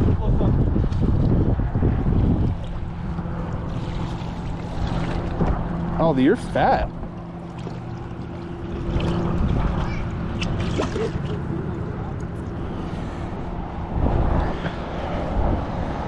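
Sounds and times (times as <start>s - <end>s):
wind noise: 0.0s - 6.0s, 12.6s - 16.0s
boat motor humming: 0.0s - 16.0s
rumbling water: 0.0s - 16.0s.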